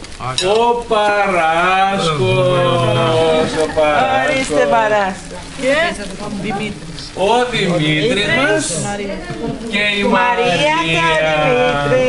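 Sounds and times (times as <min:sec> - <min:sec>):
cellophane bags crackling: 0:00.0 - 0:09.8.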